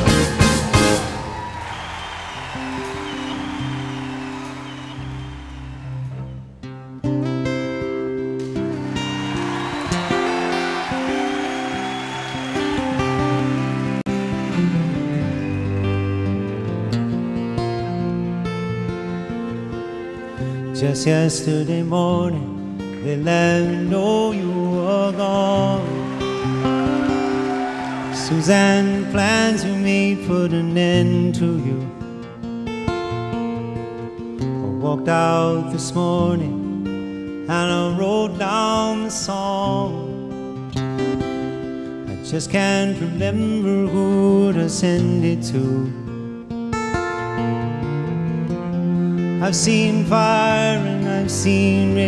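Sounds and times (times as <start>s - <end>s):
acoustic guitar chords: 0.0s - 52.0s.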